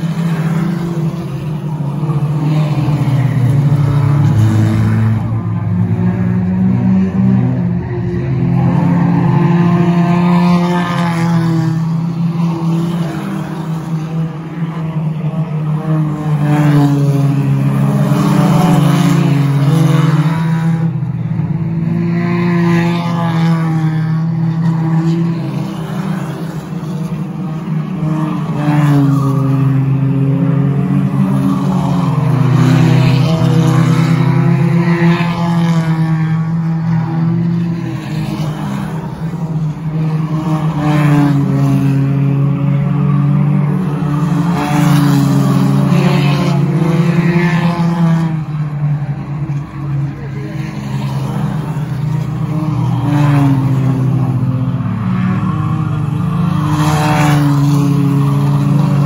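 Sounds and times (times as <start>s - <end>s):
race car engines passing: 0.0s - 59.0s.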